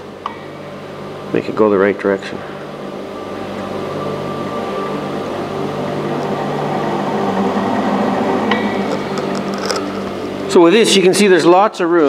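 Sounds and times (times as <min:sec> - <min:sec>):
compressor rotor whirring: 0:00.0 - 0:11.1
low hum: 0:00.0 - 0:11.1.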